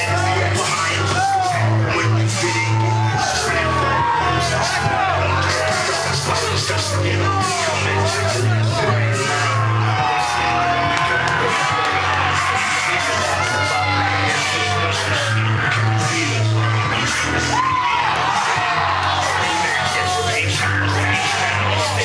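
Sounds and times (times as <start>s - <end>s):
crowd yelling and whooping: 0.0s - 22.0s
loud music with deep bass: 0.0s - 22.0s.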